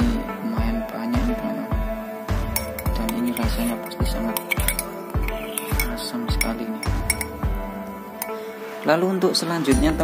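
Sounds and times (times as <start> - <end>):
background music with steady beat: 0.0 - 10.0
spoon clinking against glass: 2.5 - 7.5, 8.1 - 8.4.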